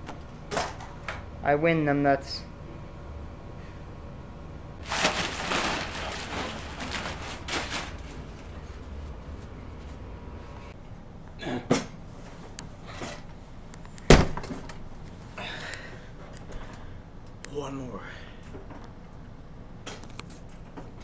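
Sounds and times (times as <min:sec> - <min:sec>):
plastic mat crumpling: 0:04.8 - 0:09.2.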